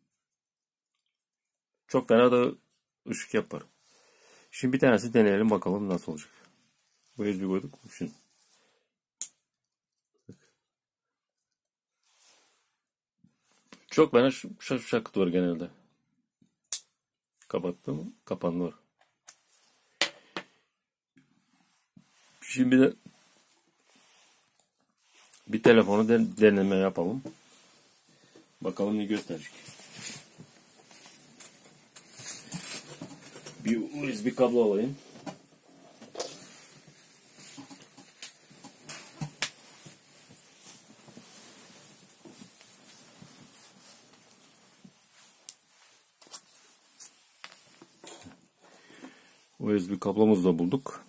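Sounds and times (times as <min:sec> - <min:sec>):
low room noise: 0:21.2 - 0:51.0
clicks and knocks of rummaging: 0:30.9 - 0:33.8.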